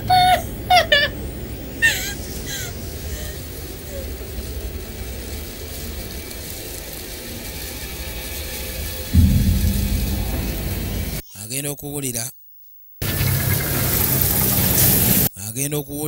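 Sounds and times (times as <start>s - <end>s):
low rumbling drone: 9.2s - 11.2s.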